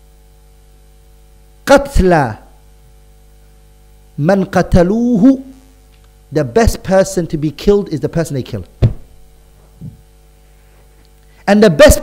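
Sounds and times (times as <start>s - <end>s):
electrical mains hum: 0.0s - 12.0s
man speaking into microphone: 1.7s - 2.5s, 4.2s - 5.6s, 6.3s - 8.7s, 11.4s - 12.0s.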